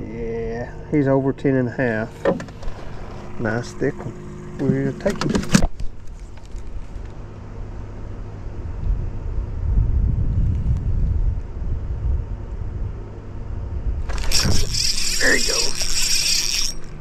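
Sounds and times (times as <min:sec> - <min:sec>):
steady low rumble with hum: 0:00.0 - 0:17.0
fishing reel whining: 0:14.1 - 0:17.0.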